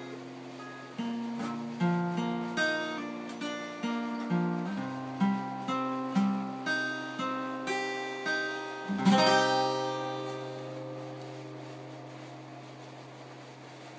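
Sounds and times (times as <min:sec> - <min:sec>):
guitar chord strummed: 0:00.0 - 0:13.2
acoustic guitar picking: 0:00.0 - 0:13.9.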